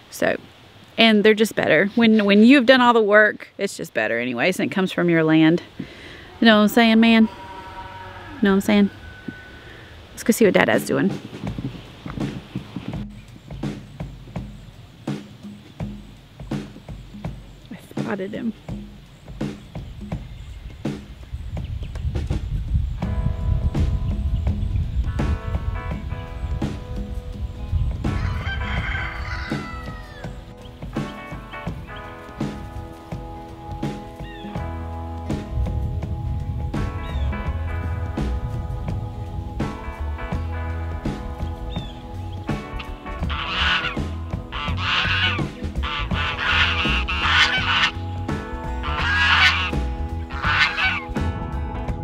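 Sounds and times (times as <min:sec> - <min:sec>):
background music: 0:04.0 - 0:21.4, 0:22.9 - 0:52.0
geese honking: 0:06.0 - 0:10.7, 0:43.1 - 0:48.1, 0:48.8 - 0:51.2
rooster crowing: 0:07.1 - 0:10.0, 0:28.2 - 0:30.4.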